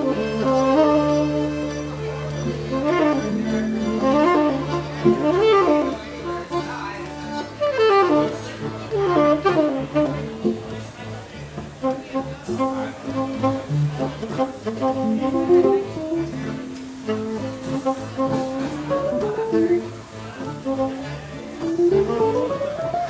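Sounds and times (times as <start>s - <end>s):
accordion held notes: 0.0s - 23.0s.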